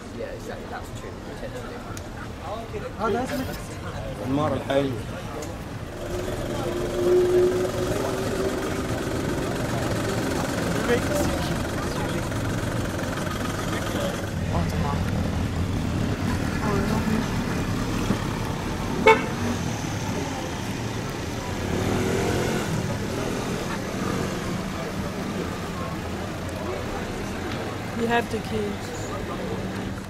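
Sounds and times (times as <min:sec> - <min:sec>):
low traffic rumble: 0:00.0 - 0:30.0
car horn toot: 0:06.8 - 0:08.8, 0:19.0 - 0:19.5.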